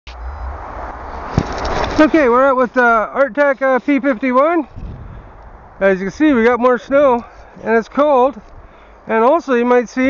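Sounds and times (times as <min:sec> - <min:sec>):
sharp knock: 0:01.2 - 0:02.0
wind rushing on microphone: 0:04.6 - 0:07.3.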